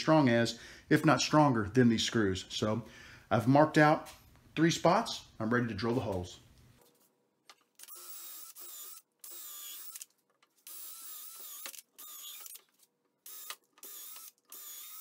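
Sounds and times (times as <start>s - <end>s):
cordless drill drilling into wood: 7.8s - 10.0s, 10.6s - 12.6s, 13.2s - 15.0s.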